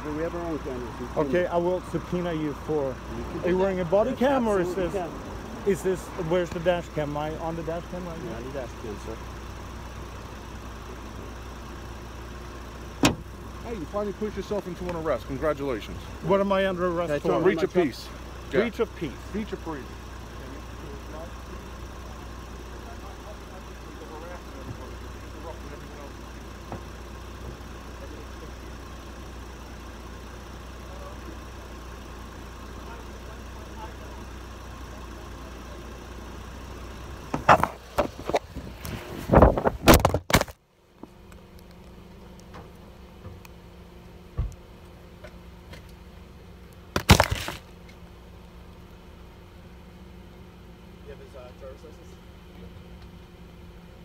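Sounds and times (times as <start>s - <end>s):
car engine idling: 0.0s - 54.0s
loud knocks and handling: 46.9s - 47.7s.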